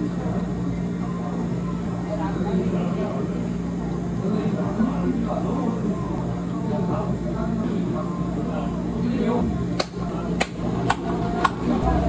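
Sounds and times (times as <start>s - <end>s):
cafe equipment hum: 0.0s - 12.0s.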